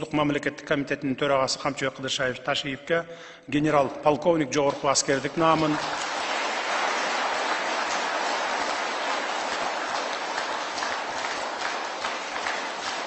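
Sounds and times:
audience applause: 5.2s - 13.0s.

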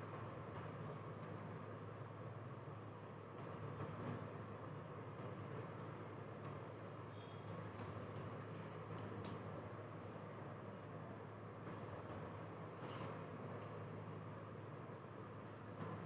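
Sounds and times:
low room hum: 0.0s - 16.0s
glass bangles clinking: 11.7s - 13.5s.

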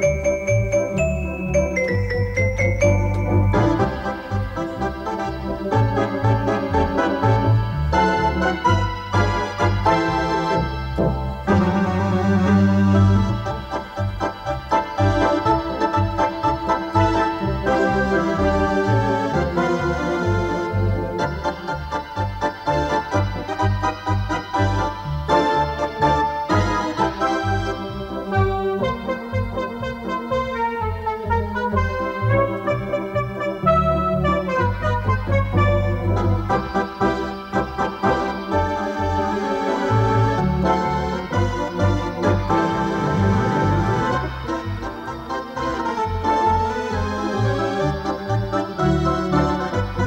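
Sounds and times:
organ playing a polka: 0.0s - 50.0s.

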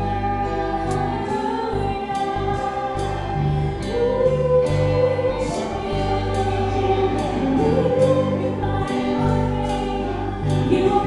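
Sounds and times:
group singing praise song: 0.0s - 11.0s
low steady accompaniment: 0.0s - 11.0s.

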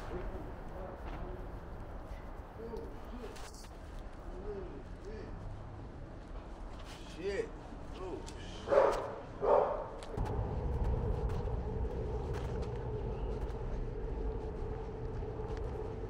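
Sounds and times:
city street rumble: 0.0s - 16.0s
dog barking: 8.6s - 10.0s.

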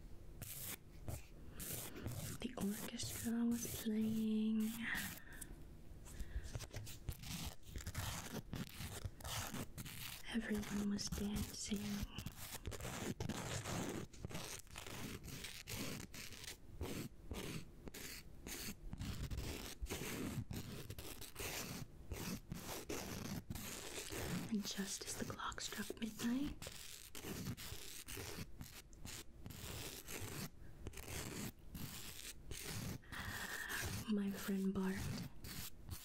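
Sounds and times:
nail file rasping: 0.4s - 5.5s, 6.1s - 36.0s.

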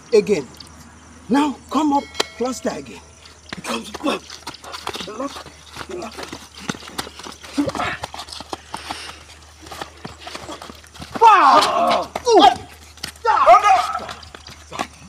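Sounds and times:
men's voices: 1.2s - 15.0s
slaps and knocks on wet concrete: 3.5s - 14.9s.

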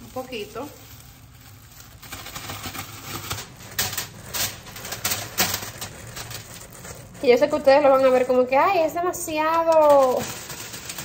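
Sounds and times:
plastic bag crinkling and rustling: 0.0s - 11.0s.

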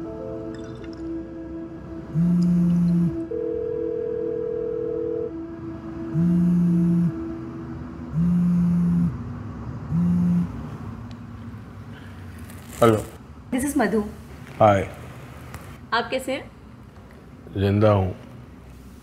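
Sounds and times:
faint musical drone: 0.0s - 11.9s
held higher note: 1.2s - 9.2s
phone vibrating: 2.0s - 7.4s, 8.1s - 9.3s, 9.9s - 10.6s.

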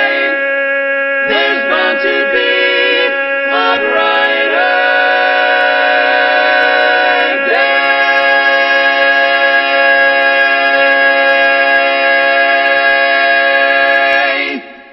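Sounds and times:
barbershop quartet singing: 0.0s - 14.8s.

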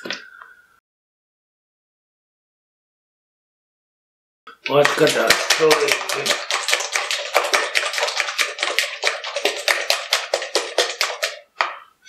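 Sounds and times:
fork beating eggs in plastic bowl: 4.6s - 11.9s.

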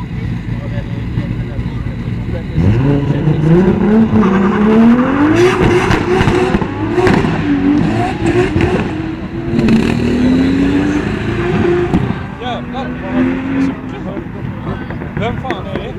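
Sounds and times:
car engine revving: 0.0s - 15.9s.

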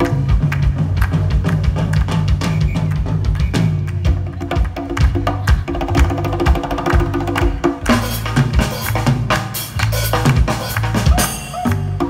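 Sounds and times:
drum kit: 0.0s - 12.0s
electric bass line: 0.0s - 12.0s
hand claps: 0.0s - 12.0s
hand percussion: 0.0s - 12.0s.

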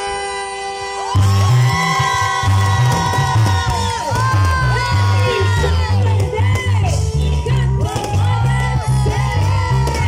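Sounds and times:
live band music through loudspeakers: 0.0s - 10.0s.

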